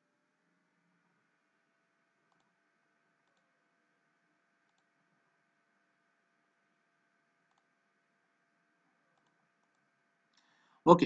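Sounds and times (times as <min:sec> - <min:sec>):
computer mouse clicks: 0:02.2 - 0:02.6, 0:03.2 - 0:03.6, 0:04.6 - 0:05.0, 0:07.4 - 0:07.8, 0:09.1 - 0:09.9.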